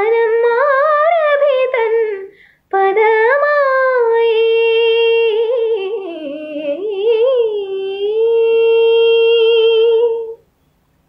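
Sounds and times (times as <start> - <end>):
woman singing long note: 1.8 - 10.4.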